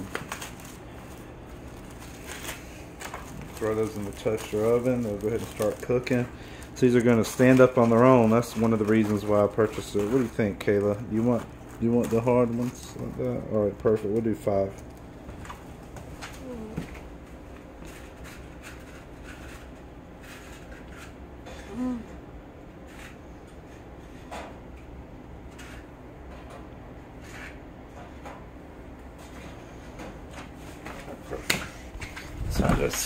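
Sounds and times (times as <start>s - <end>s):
steady low hum: 0.0s - 33.0s.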